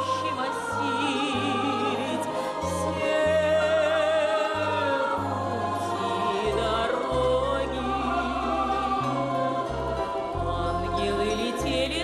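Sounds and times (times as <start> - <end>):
bass line: 4.8 - 12.0.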